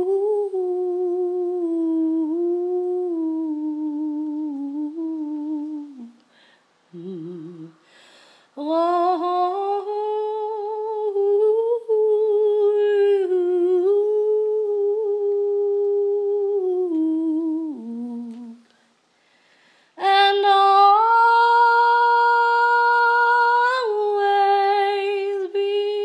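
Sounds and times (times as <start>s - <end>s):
woman humming: 0.0s - 6.2s, 6.9s - 7.8s, 8.6s - 18.7s.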